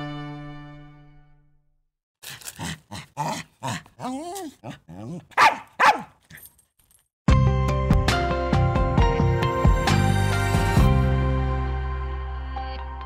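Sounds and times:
dog whining yelp: 0:03.2 - 0:06.5
small dog barking and yapping: 0:03.2 - 0:06.5.

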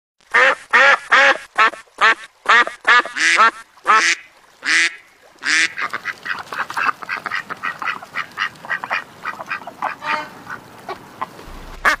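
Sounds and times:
ducks quacking: 0:00.3 - 0:12.0
sharp knock: 0:11.4 - 0:12.0.

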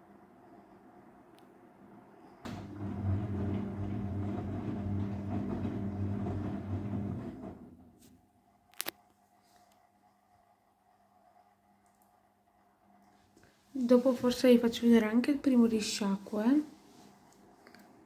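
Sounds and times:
washing machine motor humming: 0:02.4 - 0:08.2.

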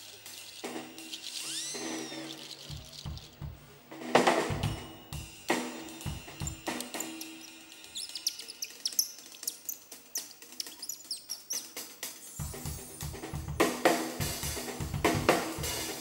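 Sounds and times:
whistle bird-like chirps: 0:00.3 - 0:03.3, 0:04.7 - 0:12.4
percussion clicks: 0:00.4 - 0:03.6, 0:05.9 - 0:11.8
bass and drum kit: 0:02.6 - 0:07.0, 0:12.4 - 0:16.0.

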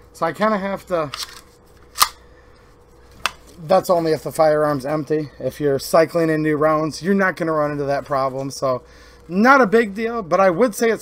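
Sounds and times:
shotgun handling rustle: 0:01.0 - 0:02.2
shotgun slide click: 0:02.0 - 0:02.2.

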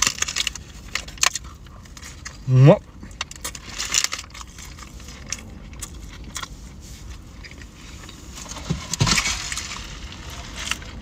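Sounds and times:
paper wrapper rustling and crinkling: 0:00.0 - 0:02.4, 0:03.2 - 0:11.0.

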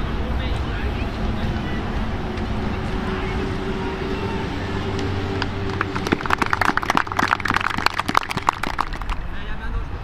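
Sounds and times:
people clapping: 0:04.9 - 0:09.3.

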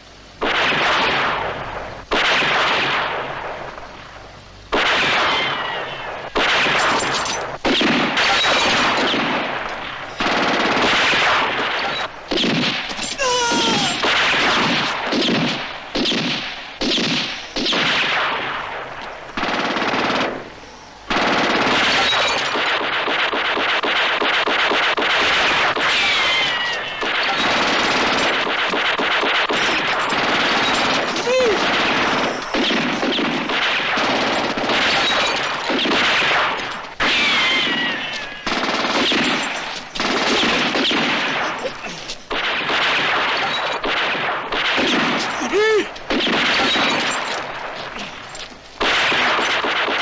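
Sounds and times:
automatic gunfire: 0:00.4 - 0:03.4, 0:04.7 - 0:20.5, 0:21.1 - 0:50.0
falling whines: 0:12.9 - 0:14.2.

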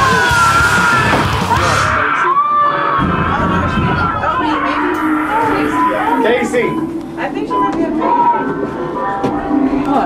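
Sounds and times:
wavering voices: 0:00.0 - 0:10.0.

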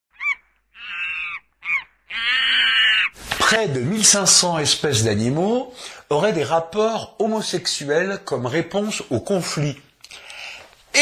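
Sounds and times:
animal calls: 0:00.1 - 0:03.2.

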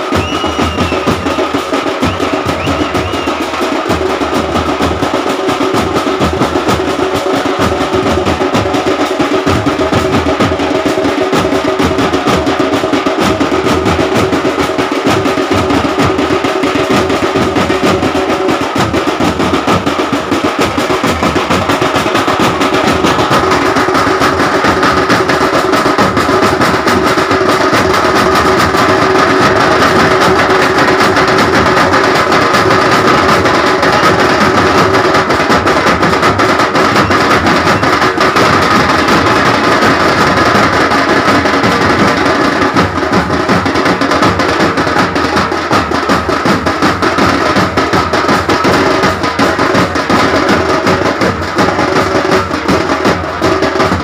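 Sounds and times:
fast continuous drumming: 0:00.0 - 0:54.0.

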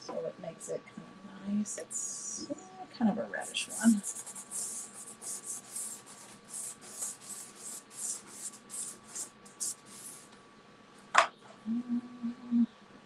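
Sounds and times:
pastel scratching on paper: 0:03.4 - 0:10.3.

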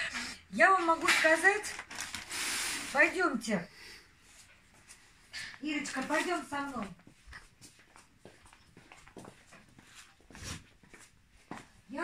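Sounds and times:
footsteps on tiled floor: 0:04.3 - 0:12.0.

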